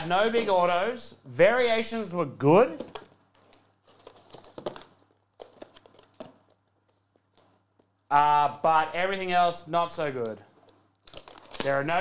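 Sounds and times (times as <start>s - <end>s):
cardboard and wrapper rustling: 1.9s - 8.0s, 10.5s - 12.0s.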